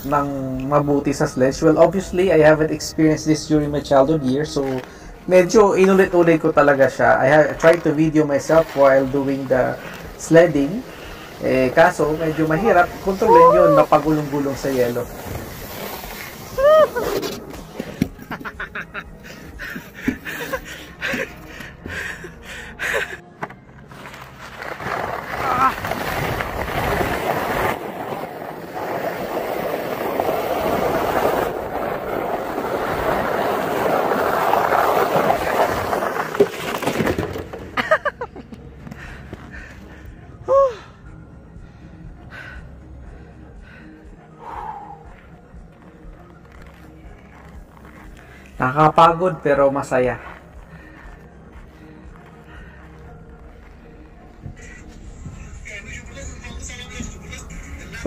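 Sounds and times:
sled scraping on packed snow: 0:00.0 - 0:21.6, 0:23.8 - 0:38.2, 0:45.8 - 0:58.0
man yelling excitedly: 0:13.2 - 0:14.3.

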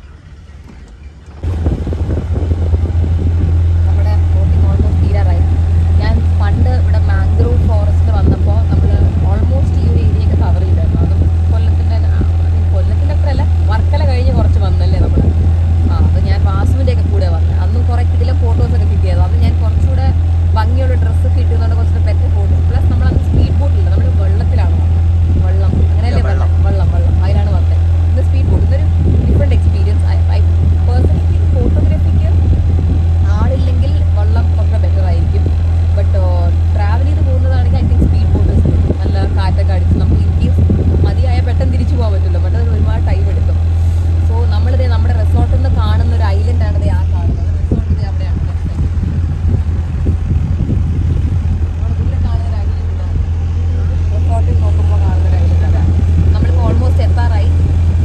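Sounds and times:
speedboat engine droning: 0:00.0 - 0:58.0
woman talking: 0:01.4 - 0:50.3, 0:51.5 - 0:57.8.

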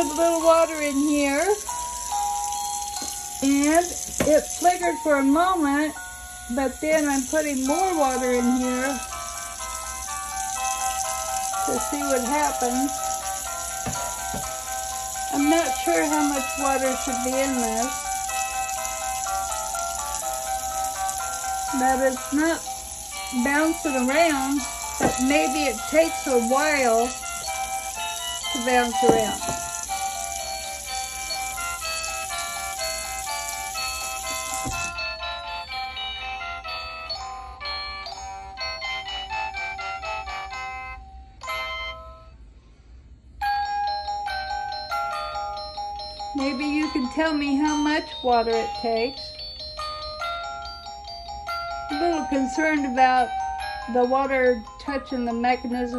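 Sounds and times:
steady hiss: 0:00.0 - 0:36.0
tinny electronic melody: 0:00.0 - 0:42.3.

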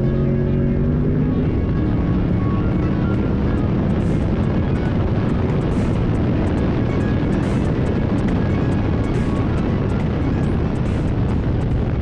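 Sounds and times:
background music: 0:00.0 - 0:12.0
car engine at speed: 0:00.0 - 0:12.0.

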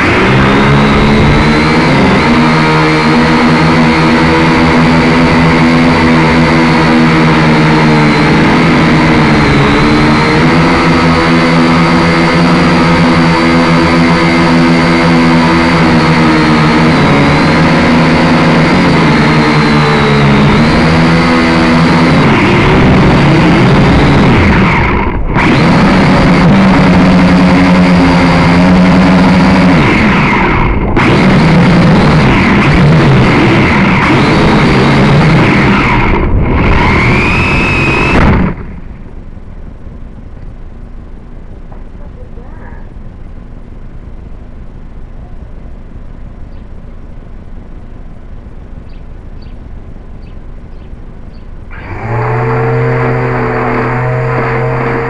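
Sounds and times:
drone motors whining: 0:00.0 - 0:55.0.

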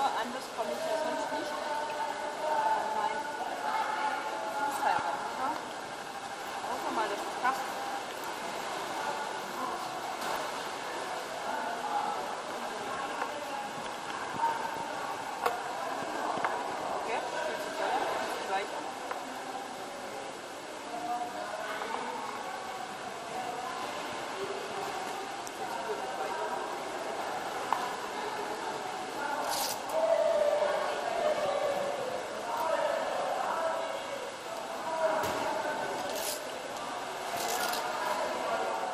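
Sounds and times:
indistinct voices in a tiled hall: 0:00.0 - 0:38.9.

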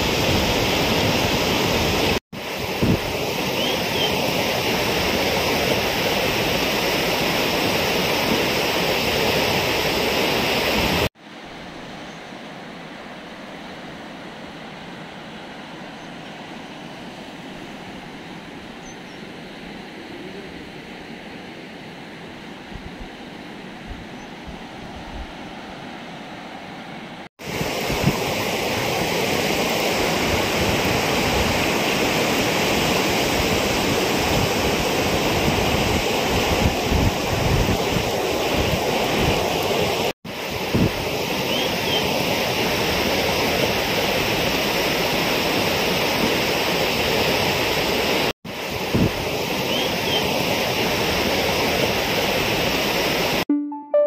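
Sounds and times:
wind gusting on microphone: 0:00.0 - 0:11.1, 0:27.4 - 0:52.9
floodwater rushing: 0:00.0 - 0:15.7, 0:27.4 - 0:53.4.

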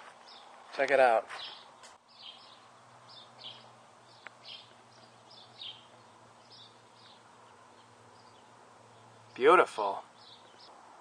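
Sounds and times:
small birds chirping: 0:00.2 - 0:10.8.

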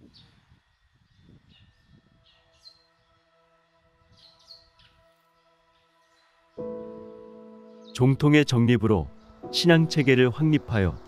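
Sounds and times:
small birds chirping: 0:00.0 - 0:03.2, 0:04.1 - 0:11.0.

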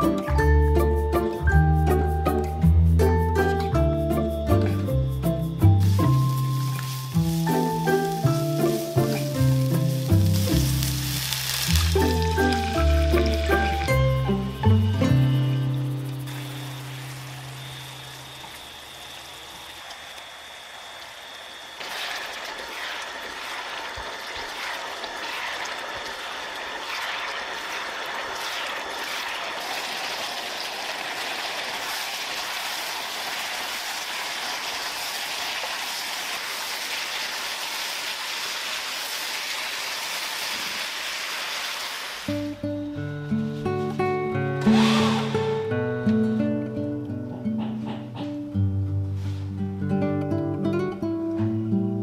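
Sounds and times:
background music: 0:00.0 - 0:16.5, 0:42.3 - 0:52.0
food sizzling in a pan: 0:05.6 - 0:42.6, 0:44.7 - 0:45.8.

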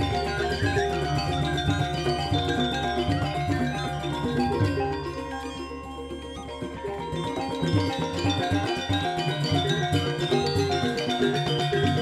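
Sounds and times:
metallophones ringing: 0:00.0 - 0:12.0.

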